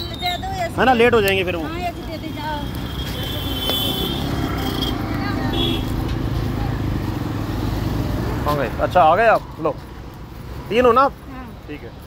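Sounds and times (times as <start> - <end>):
motorcycles passing: 0.0 - 12.0
road vehicles rumbling: 0.0 - 12.0.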